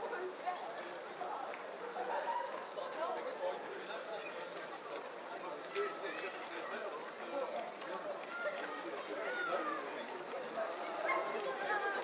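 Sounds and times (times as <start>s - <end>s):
babble of overlapping voices: 0.0s - 12.0s.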